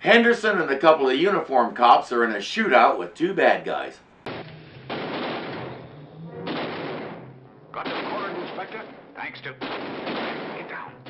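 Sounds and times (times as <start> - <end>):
pistol shots echoing: 4.2 - 10.9.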